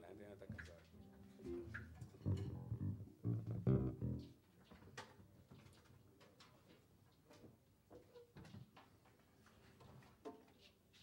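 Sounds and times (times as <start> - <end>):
electric bass guitar notes: 0.5 - 4.4.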